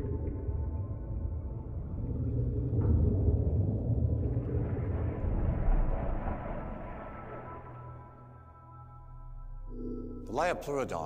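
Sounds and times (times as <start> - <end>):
deep underwater rumble: 0.0 - 10.3
soft sustained music tones: 0.0 - 11.0.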